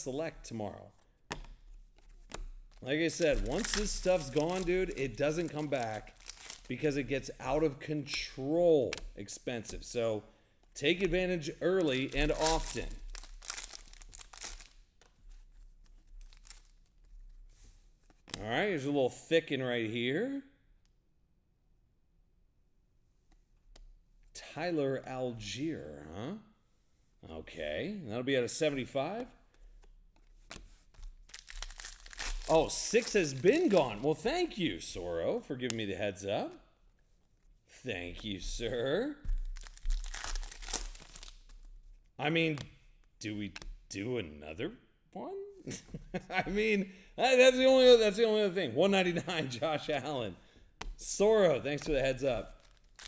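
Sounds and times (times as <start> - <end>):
cards rustling and clicking: 1.0 - 9.9, 10.6 - 18.4, 29.5 - 34.6, 39.3 - 42.0, 50.8 - 53.0
foil wrapper crinkling and tearing: 2.7 - 7.6, 11.9 - 14.8, 16.1 - 16.9, 31.0 - 34.0, 39.4 - 41.7, 51.7 - 53.0.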